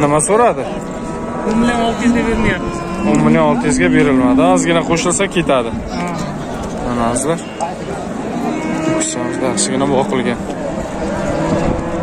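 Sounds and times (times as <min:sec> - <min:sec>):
voices: 0:00.0 - 0:12.0
cow mooing: 0:00.6 - 0:12.0.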